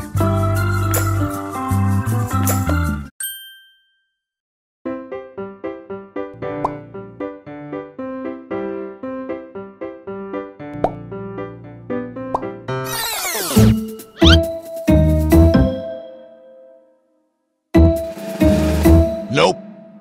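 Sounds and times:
light bouncy background music: 0:13.4 - 0:16.2.

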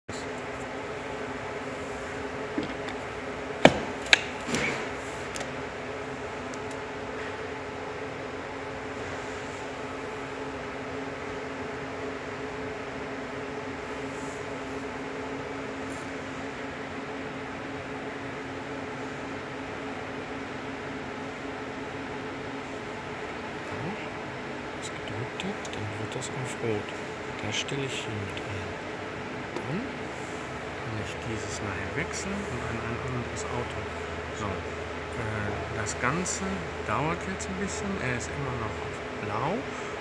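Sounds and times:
steady low hum: 0:00.1 - 0:40.0.

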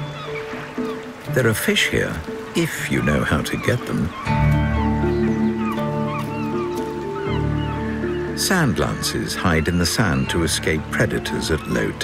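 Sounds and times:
score music with held notes: 0:00.0 - 0:12.0
short high bird calls: 0:03.2 - 0:10.4.

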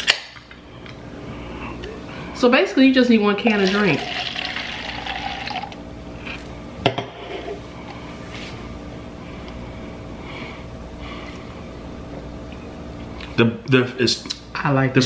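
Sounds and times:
drink pouring into plastic cup: 0:03.6 - 0:05.8.

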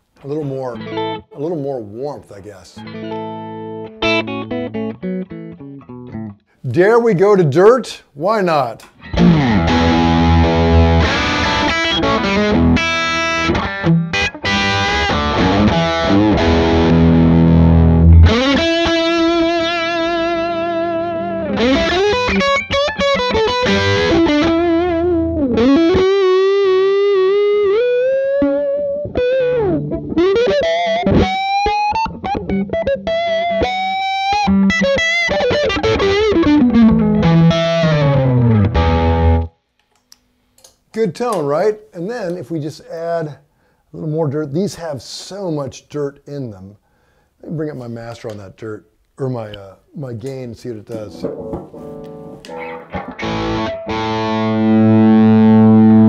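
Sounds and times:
overdriven electric guitar: 0:00.8 - 0:01.4, 0:02.8 - 0:06.6, 0:08.8 - 0:40.1, 0:50.9 - 0:56.0.

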